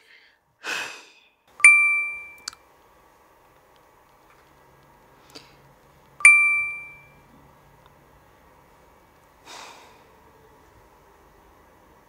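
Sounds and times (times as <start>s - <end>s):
phone message chime: 1.6s - 2.5s, 6.2s - 7.2s.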